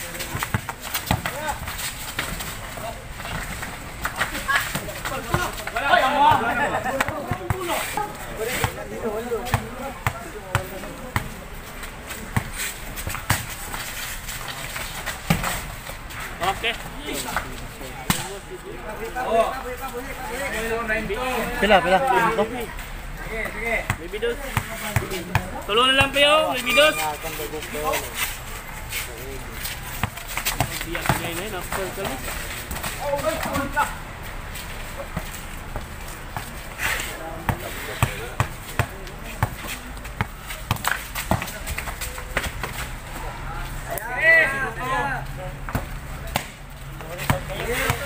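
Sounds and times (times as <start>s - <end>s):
basketball bouncing on concrete: 0.0s - 7.8s, 8.6s - 13.8s, 23.4s - 26.3s, 29.8s - 33.8s, 37.4s - 42.9s, 45.6s - 48.0s
people talking and calling out: 0.0s - 48.0s.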